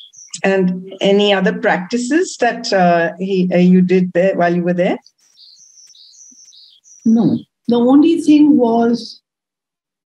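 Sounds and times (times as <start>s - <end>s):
bird chirping faintly: 0.0s - 1.5s, 4.5s - 8.5s.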